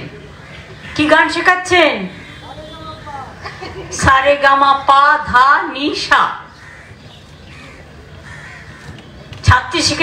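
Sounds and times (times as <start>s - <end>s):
faint bird calls: 6.4s - 9.4s.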